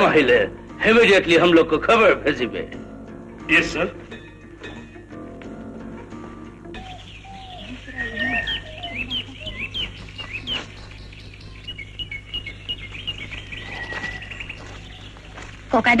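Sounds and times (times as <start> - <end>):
birds chirping: 0.9 - 16.0.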